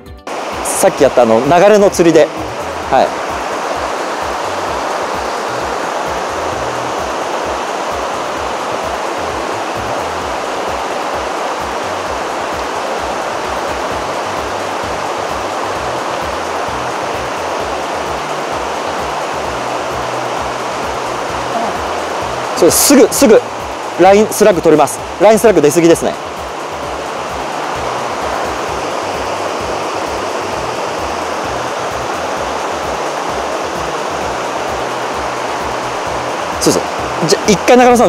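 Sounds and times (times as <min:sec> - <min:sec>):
low music bass line: 0:00.0 - 0:03.2, 0:05.5 - 0:07.2, 0:08.7 - 0:10.4, 0:13.1 - 0:38.0
river rushing over rocks: 0:00.3 - 0:38.0.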